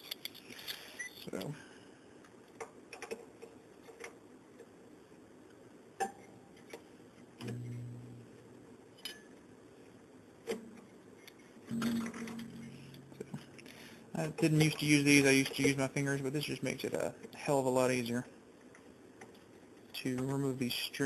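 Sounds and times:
guitar string ringing low: 11.7 - 13.5.

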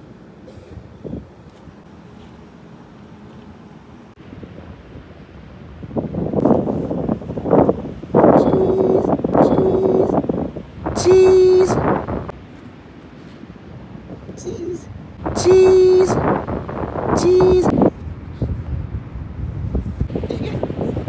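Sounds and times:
wind buffeting microphone: 0.7 - 1.9, 4.2 - 21.0
short high tones: 10.9 - 12.1.

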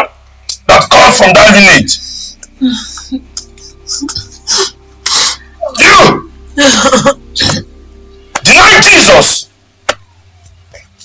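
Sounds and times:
faint steady drone: 0.0 - 11.0
person shouting outbursts: 5.6 - 6.3.

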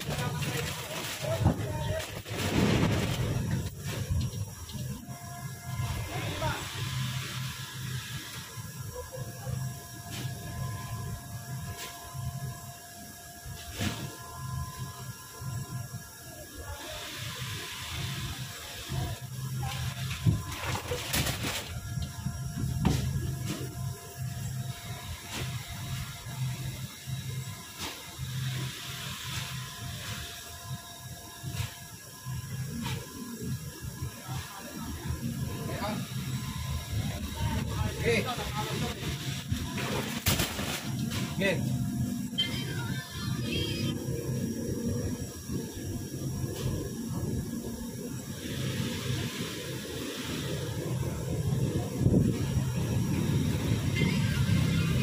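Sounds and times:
sacks thudding into van: 39.8 - 41.4.

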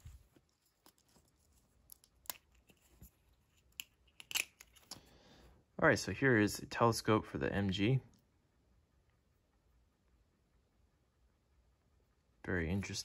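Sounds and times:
soft rustle: 0.0 - 3.8.

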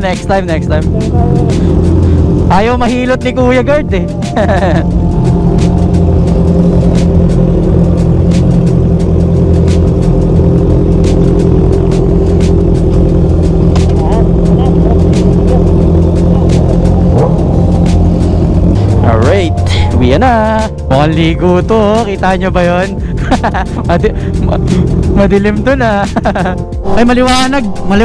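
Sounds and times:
motorcycle engine idling: 0.0 - 27.5.

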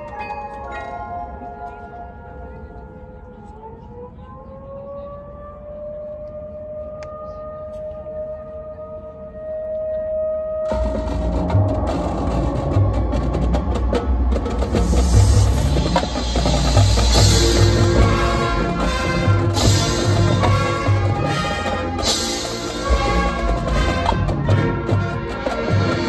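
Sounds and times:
held rising tone: 1.3 - 20.4
marching band and drumline: 10.7 - 26.0.

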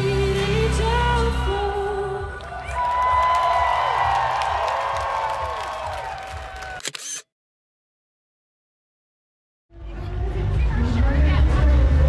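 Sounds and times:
live festival music: 0.0 - 6.8
audience whooping: 2.4 - 6.9.

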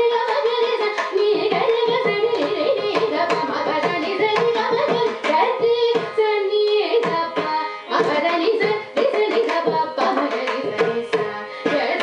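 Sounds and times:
violin: 0.0 - 12.0
woman singing: 0.0 - 12.0.

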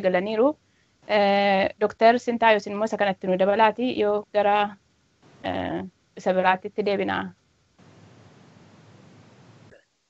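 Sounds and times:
faint audio line hiss: 0.0 - 10.0.

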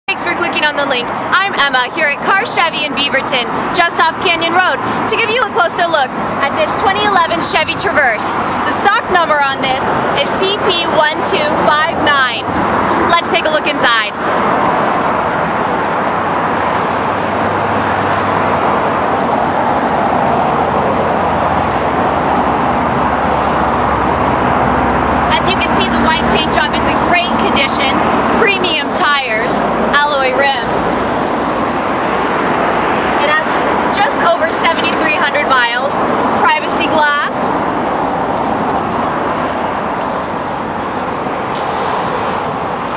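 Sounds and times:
woman talking: 0.1 - 14.2, 25.3 - 30.8, 33.2 - 37.6
road traffic rushing: 0.1 - 42.9.

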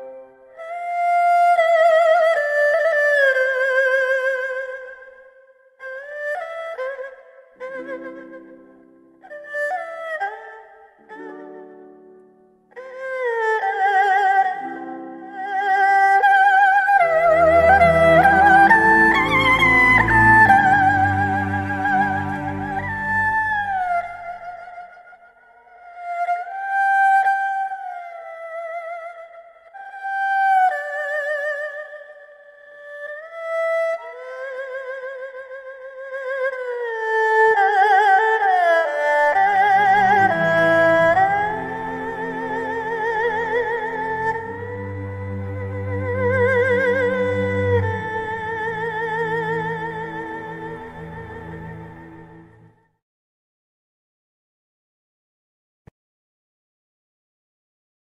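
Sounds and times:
flute playing slow melody: 17.0 - 24.2.

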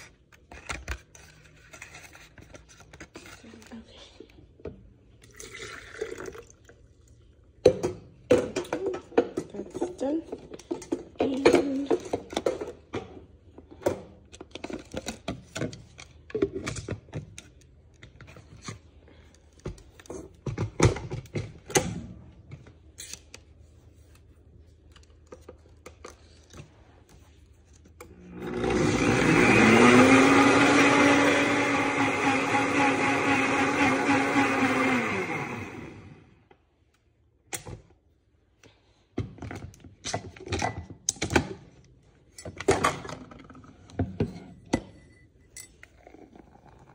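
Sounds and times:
blender motor running: 28.1 - 36.4.

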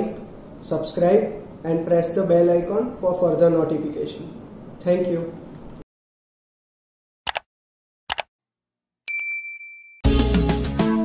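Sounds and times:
notification ding: 9.1 - 10.0.

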